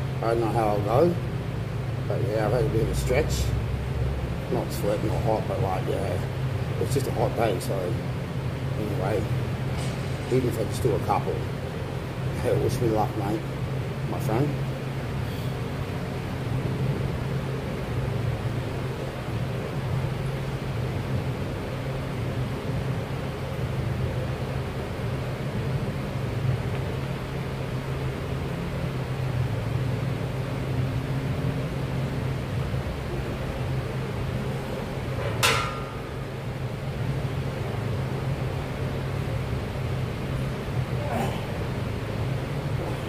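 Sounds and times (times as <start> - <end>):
ventilation hum: 0.0 - 43.0.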